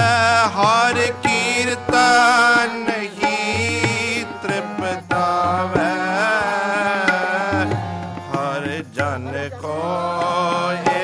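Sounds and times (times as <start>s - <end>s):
harmonium: 0.0s - 11.0s
man singing a hymn: 0.0s - 11.0s
tabla: 0.0s - 11.0s.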